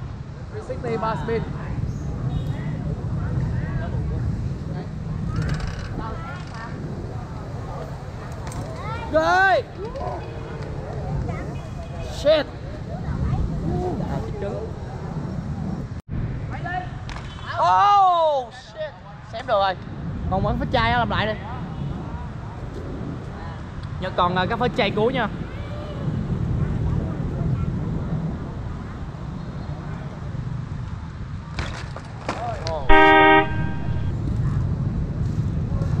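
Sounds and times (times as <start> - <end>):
low rumble of street noise: 0.0 - 36.0
wind on microphone: 1.3 - 16.0
vehicle horn: 32.9 - 34.1.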